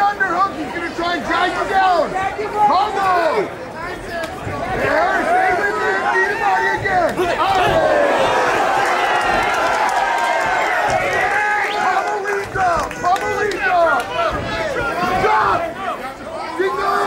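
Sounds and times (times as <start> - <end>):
crowd shouting: 4.3 - 17.0.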